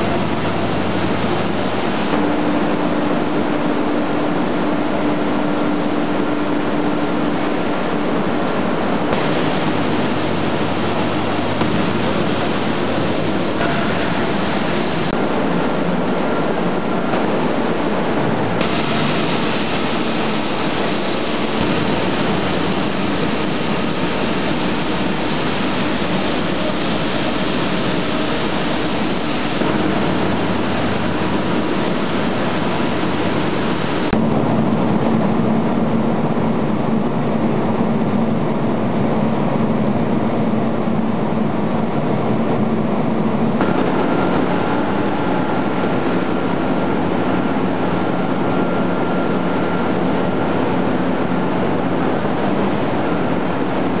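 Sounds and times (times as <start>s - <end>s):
dull machinery rumble: 0.0s - 54.0s
low machinery hum: 0.0s - 54.0s
rotating drums running: 7.2s - 34.9s.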